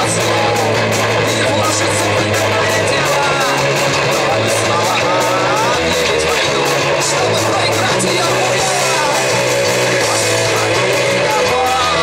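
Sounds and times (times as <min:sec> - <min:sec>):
man singing: 0:00.0 - 0:12.0
rock band playing live: 0:00.0 - 0:12.0.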